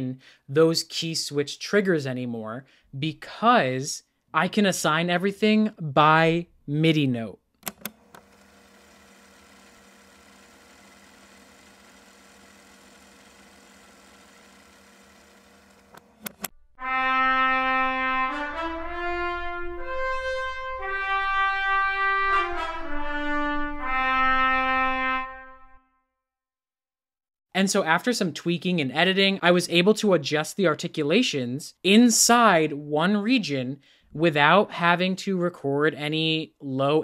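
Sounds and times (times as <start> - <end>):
clicks: 7.6 - 8.4, 15.7 - 16.6
solo trumpet phrase: 16.8 - 25.8.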